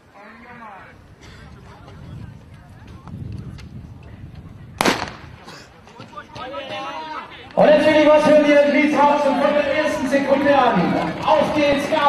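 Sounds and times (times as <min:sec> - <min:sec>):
starting pistol shot: 0:04.8 - 0:05.4.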